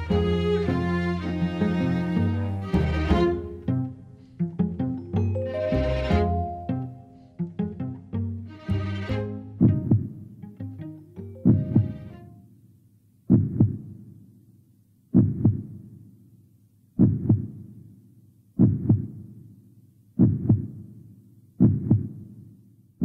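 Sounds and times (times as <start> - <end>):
heartbeat thumps: 9.5 - 10.3, 11.4 - 12.2, 13.3 - 14.0, 15.1 - 15.9, 17.0 - 17.7, 18.6 - 19.3, 20.2 - 20.9, 21.6 - 22.3.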